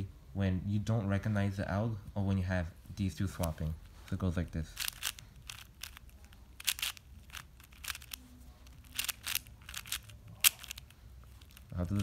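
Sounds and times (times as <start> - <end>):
puzzle cube layers clicking: 4.8 - 12.0.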